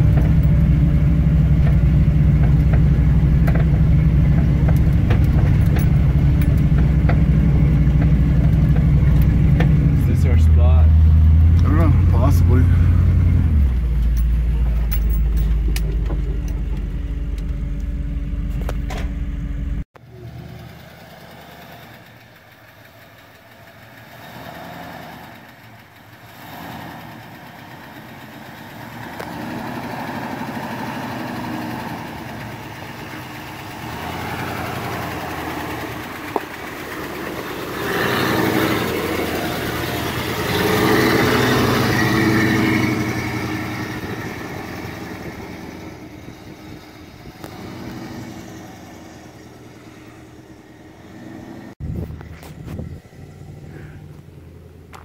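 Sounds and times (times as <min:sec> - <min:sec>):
vehicle engine running low: 0:00.0 - 0:55.0.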